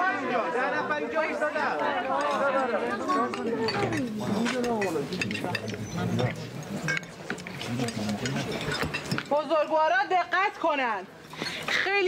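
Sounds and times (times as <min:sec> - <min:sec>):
overlapping crowd chatter: 0:00.0 - 0:12.0.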